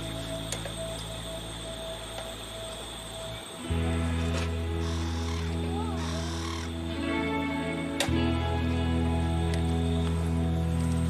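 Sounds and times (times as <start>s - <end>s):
background music with held tones: 0.0s - 11.0s
rough call: 2.4s - 7.2s.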